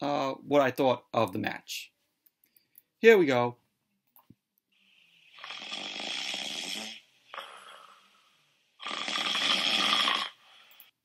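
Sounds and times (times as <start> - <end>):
person snoring: 4.8 - 10.9.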